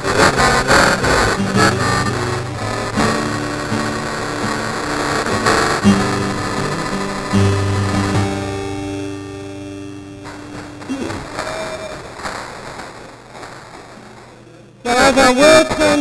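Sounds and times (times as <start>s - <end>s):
acoustic guitar playing: 0.0s - 16.0s.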